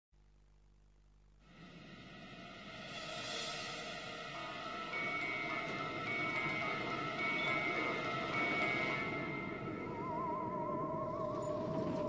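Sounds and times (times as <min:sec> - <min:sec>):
eerie background music: 0:01.5 - 0:12.0.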